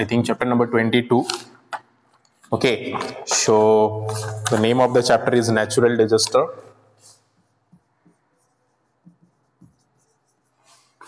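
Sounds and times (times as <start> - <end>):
marker scratching on whiteboard: 4.1 - 5.5, 6.3 - 11.0.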